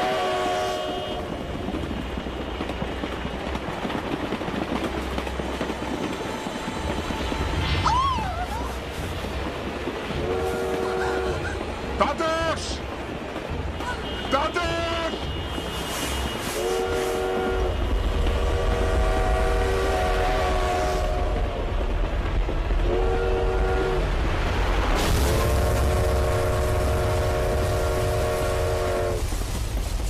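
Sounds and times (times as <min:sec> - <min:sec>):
train horn blasts: 0:00.0 - 0:01.4, 0:10.1 - 0:11.6, 0:13.8 - 0:21.7, 0:22.8 - 0:24.1, 0:25.0 - 0:29.3
moving train rumble: 0:00.0 - 0:30.0.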